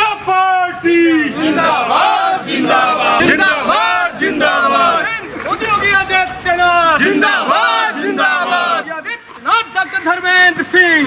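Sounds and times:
men chanting slogans in unison: 0:01.0 - 0:05.3, 0:06.7 - 0:08.9.

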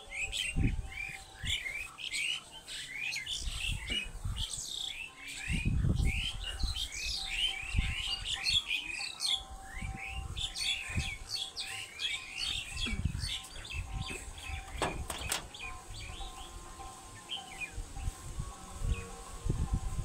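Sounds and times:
small birds chirping: 0:00.0 - 0:19.4.

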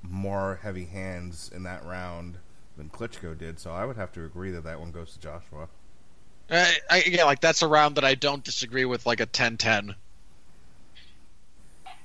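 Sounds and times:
faint hiss: 0:00.0 - 0:12.0
steady low hum: 0:00.0 - 0:12.0.

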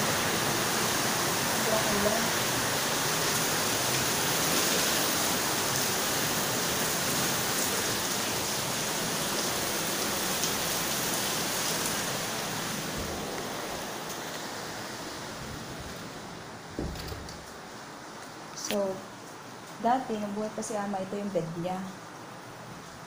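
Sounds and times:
heavy rain: 0:00.0 - 0:23.0.

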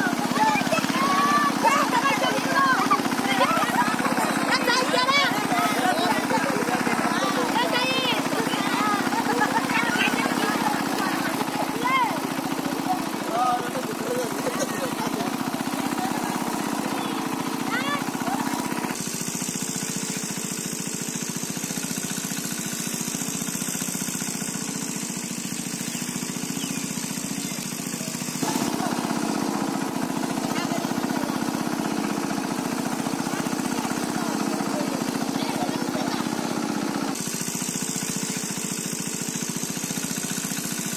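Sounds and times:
voices calling: 0:00.0 - 0:19.0, 0:25.4 - 0:37.2
small engine running: 0:00.0 - 0:40.9.

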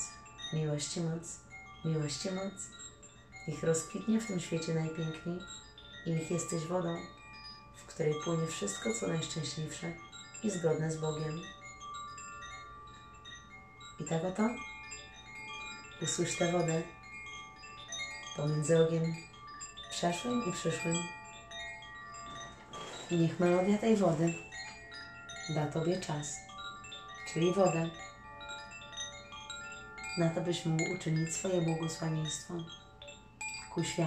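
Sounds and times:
ringing chime-like music: 0:00.0 - 0:34.0.

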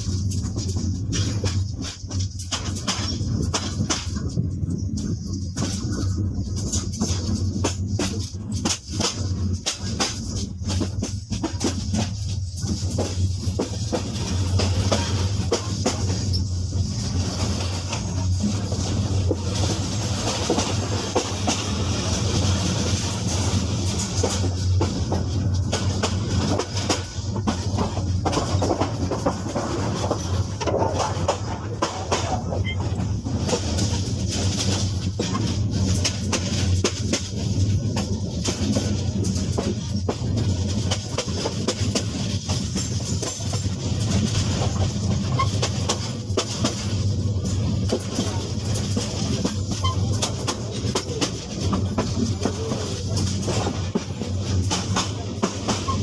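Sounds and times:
train rumbling on rails: 0:00.0 - 0:56.0
wheels clicking over rail joints: 0:00.0 - 0:56.0.

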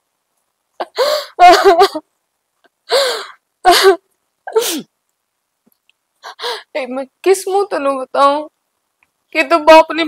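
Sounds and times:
woman sobbing: 0:00.8 - 0:02.1, 0:02.8 - 0:04.8.

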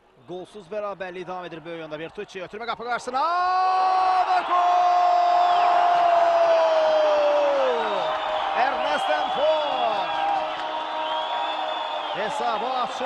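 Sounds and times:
stadium crowd cheering: 0:00.2 - 0:13.0.

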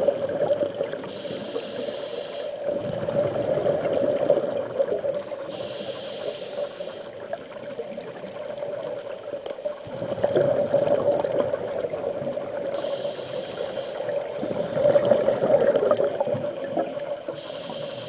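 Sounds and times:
bubbles gurgling: 0:00.0 - 0:01.1, 0:02.6 - 0:05.4, 0:07.1 - 0:12.9, 0:14.0 - 0:17.4
regulator hissing inhale: 0:01.0 - 0:02.7, 0:05.2 - 0:07.2, 0:12.7 - 0:16.0, 0:17.3 - 0:18.0.

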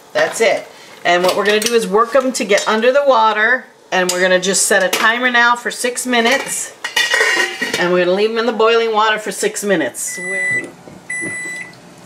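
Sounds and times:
microwave timer beeping: 0:10.0 - 0:11.8.

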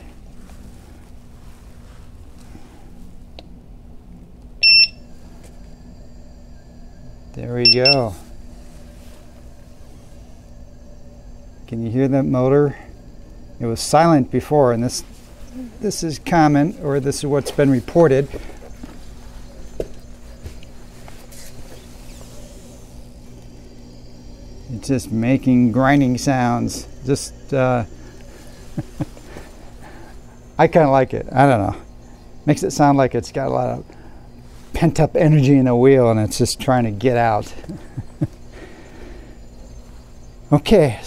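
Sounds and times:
faint high whine: 0:00.0 - 0:41.0
low hum: 0:00.0 - 0:41.0
short high beep: 0:04.6 - 0:05.0, 0:07.6 - 0:08.1.

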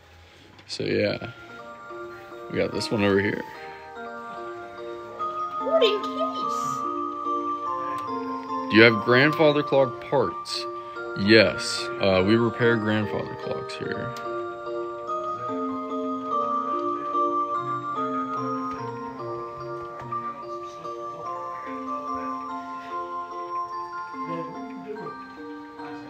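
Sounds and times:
clock playing electronic tune: 0:01.1 - 0:26.0.

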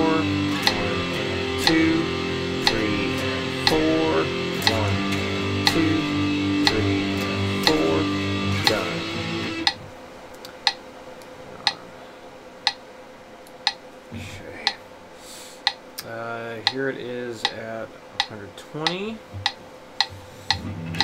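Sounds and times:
electric guitar strumming power chords: 0:00.0 - 0:09.8, 0:20.1 - 0:21.0
metronome clicking: 0:00.0 - 0:09.8, 0:18.2 - 0:21.0.

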